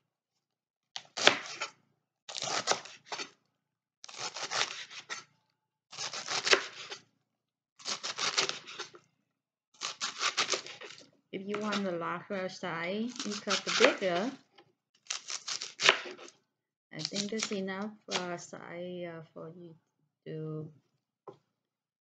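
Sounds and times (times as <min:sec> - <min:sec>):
knife chopping lettuce: 0:01.0 - 0:01.7, 0:02.3 - 0:03.4, 0:04.1 - 0:05.3, 0:05.9 - 0:07.0, 0:07.8 - 0:09.0, 0:09.8 - 0:12.0, 0:13.1 - 0:14.4, 0:15.0 - 0:16.3.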